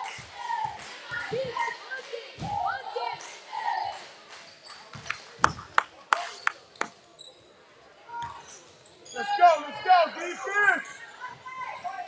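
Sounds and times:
voices: 0.0s - 7.0s.

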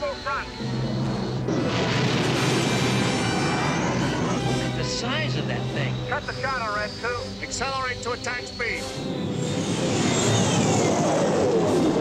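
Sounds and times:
orchestral music: 0.0s - 12.0s
radio-filtered voice: 4.6s - 8.9s
spacecraft engine noise flying past: 8.9s - 12.0s.

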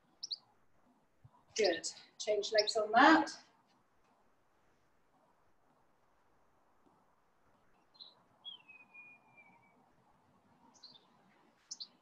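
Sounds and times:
faint bird calls: 7.7s - 9.8s, 10.7s - 12.0s.

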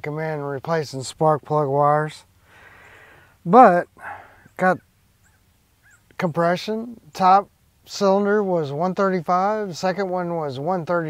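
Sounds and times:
man breathing: 2.4s - 4.6s.

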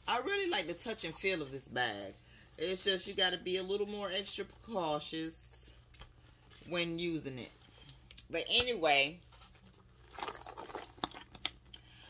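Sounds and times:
paper rustling and crinkling: 9.2s - 11.3s.

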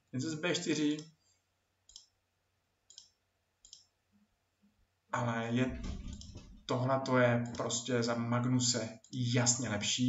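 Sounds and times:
faint computer mouse clicks: 1.9s - 2.1s, 2.9s - 3.9s.

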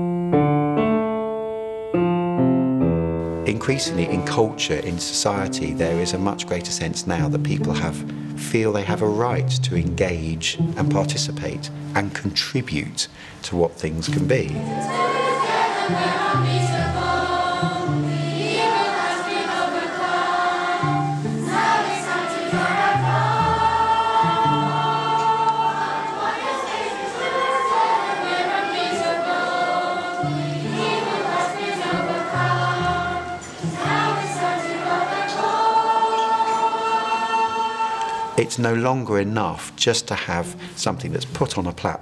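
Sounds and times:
choir singing: 3.5s - 6.5s, 14.5s - 38.8s.

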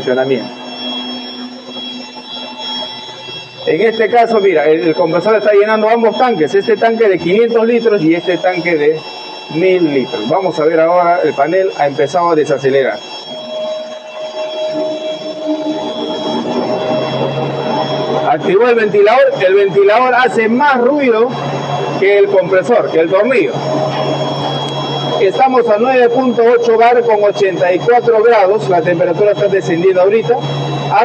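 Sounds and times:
air compressor humming and whining: 0.0s - 31.0s
cooling fan: 0.0s - 31.0s.

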